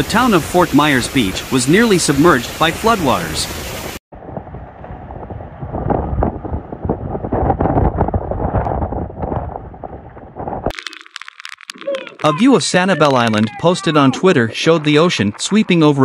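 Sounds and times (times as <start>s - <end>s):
wind and rain on microphone: 0.0s - 10.7s.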